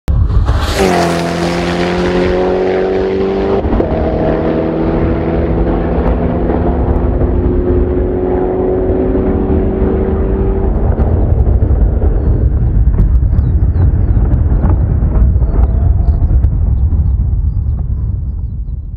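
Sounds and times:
car accelerating through gears: 0:00.4 - 0:12.2.

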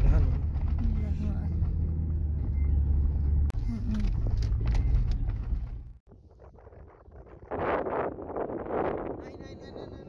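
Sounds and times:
car driving rumble inside cabin: 0:00.0 - 0:06.0
wind buffeting microphone: 0:06.0 - 0:10.0.

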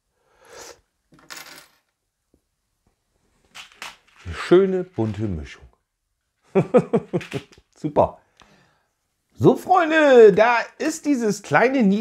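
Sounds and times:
plastic bricks clattering on table: 0:01.1 - 0:01.9.

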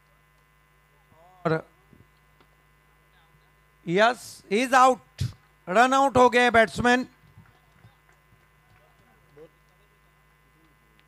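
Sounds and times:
electrical mains hum: 0:00.0 - 0:11.0
man talking: 0:01.0 - 0:01.8, 0:03.2 - 0:07.1.

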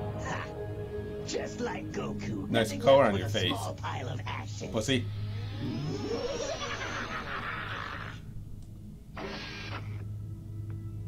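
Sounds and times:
steady low hum: 0:00.0 - 0:11.0
cartoon energy blast: 0:05.2 - 0:08.2.

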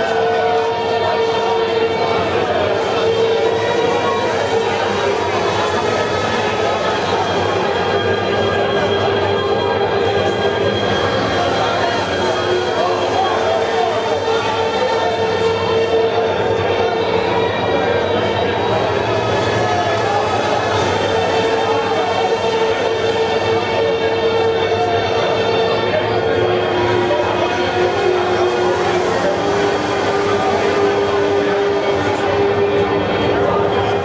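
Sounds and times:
crowd chatter: 0:00.0 - 0:34.0
loud steady drone: 0:00.0 - 0:34.0.

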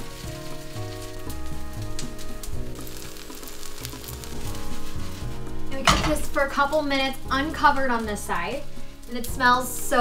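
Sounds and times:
pancake sizzling in oil: 0:00.0 - 0:10.0.

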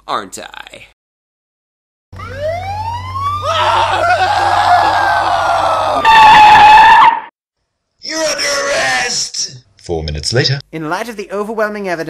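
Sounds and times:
police siren wailing: 0:02.2 - 0:07.3
loud held cry: 0:03.4 - 0:07.3, 0:08.0 - 0:09.3.

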